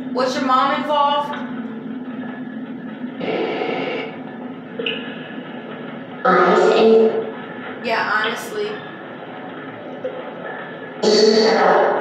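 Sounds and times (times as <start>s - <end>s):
burst of noise: 3.2s - 4.2s
radio static hiss and hum: 3.2s - 7.3s.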